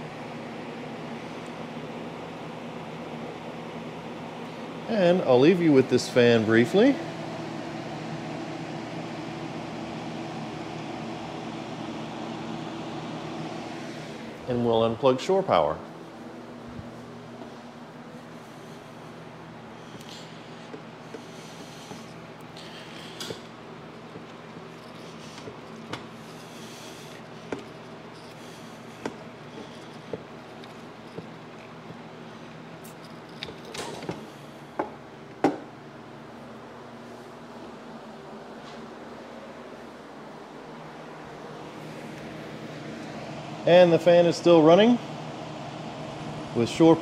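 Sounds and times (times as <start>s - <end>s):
electric fan running: 0.0s - 47.0s.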